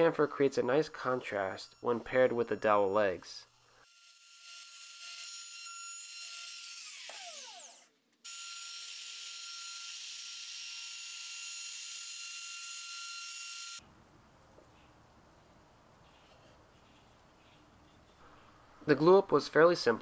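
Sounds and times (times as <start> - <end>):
router cutting wood: 3.9 - 13.8.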